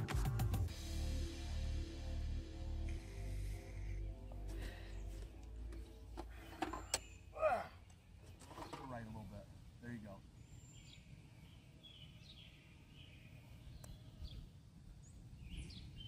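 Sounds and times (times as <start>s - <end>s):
background music: 0.0s - 6.4s.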